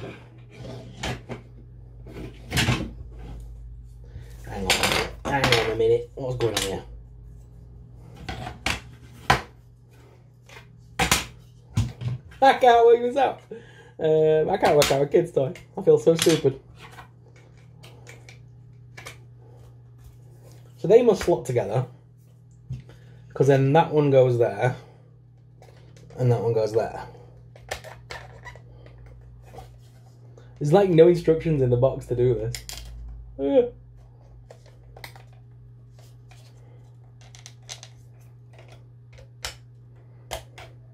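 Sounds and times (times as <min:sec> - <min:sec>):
steady low hum: 0:00.0 - 0:40.9.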